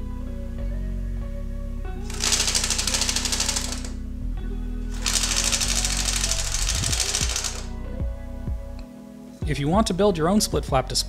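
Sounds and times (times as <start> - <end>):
split-flap display clattering: 2.1 - 4.0, 5.0 - 7.7.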